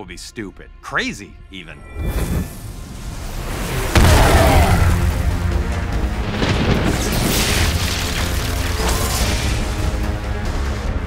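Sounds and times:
dramatic film score: 0:00.0 - 0:11.0
lightning crash: 0:02.5 - 0:10.0.

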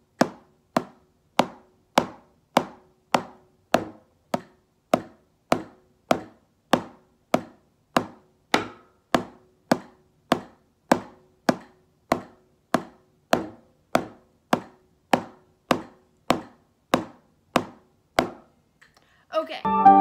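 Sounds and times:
drumsticks tapping a practice pad: 0:00.1 - 0:18.5.

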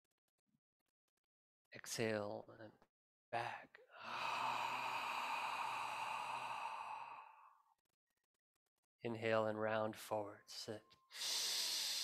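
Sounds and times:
man exhaling slowly: 0:04.0 - 0:07.6, 0:11.2 - 0:12.0.

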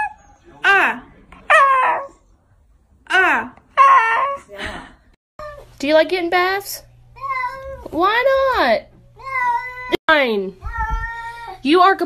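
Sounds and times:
dog whining: 0:00.0 - 0:02.2, 0:03.7 - 0:04.5.

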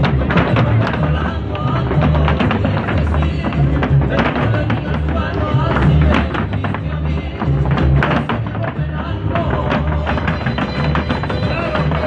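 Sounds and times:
folk dance music with bass beat: 0:00.0 - 0:12.0
heel stamping on stage: 0:00.0 - 0:12.0.

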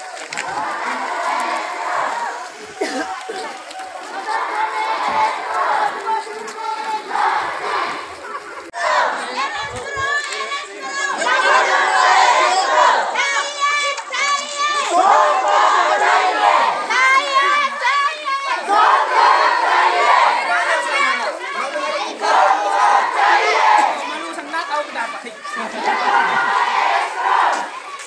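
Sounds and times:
crowd shouting together: 0:00.0 - 0:28.0.

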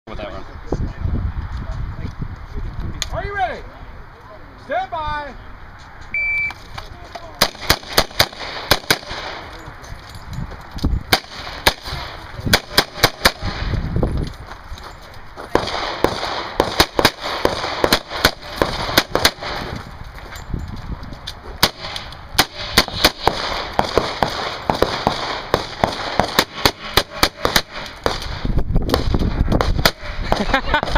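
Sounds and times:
shot timer beep: 0:06.2 - 0:06.6
revolver firing rapid shots: 0:07.4 - 0:09.4, 0:11.1 - 0:13.7, 0:15.5 - 0:19.6, 0:21.6 - 0:30.1.

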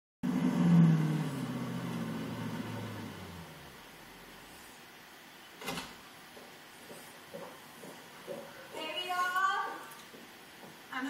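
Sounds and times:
car engine running: 0:00.2 - 0:04.6.

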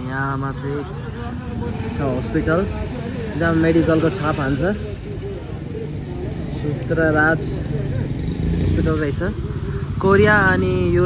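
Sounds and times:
motorcycle engine rumbling: 0:00.0 - 0:11.0
person's voice: 0:08.8 - 0:11.0.

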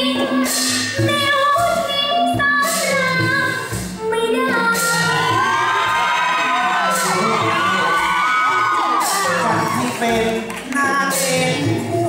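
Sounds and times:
musical accompaniment: 0:00.0 - 0:12.0
audience shouting and cheering: 0:04.3 - 0:11.9.

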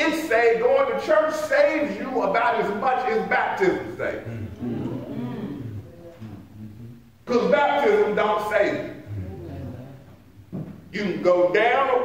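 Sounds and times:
person preaching: 0:00.0 - 0:10.0, 0:10.9 - 0:12.0
low hummed vocal response: 0:04.1 - 0:07.3, 0:08.9 - 0:10.2
faint murmuring voices: 0:04.2 - 0:07.1.

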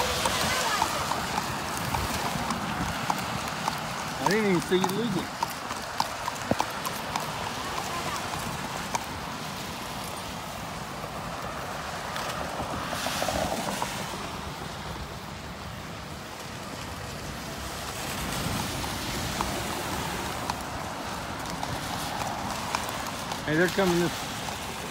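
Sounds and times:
horse hooves clip-clopping: 0:00.0 - 0:24.9
traffic hissing on wet road: 0:00.0 - 0:24.9.

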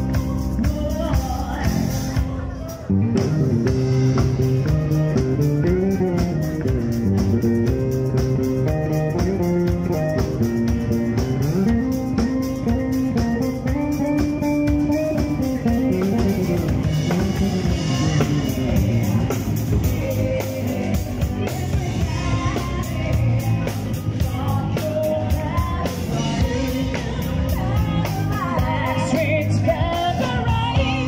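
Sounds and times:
drum kit beat: 0:00.0 - 0:31.0
electric bass line: 0:00.0 - 0:31.0
guitar: 0:00.0 - 0:31.0.

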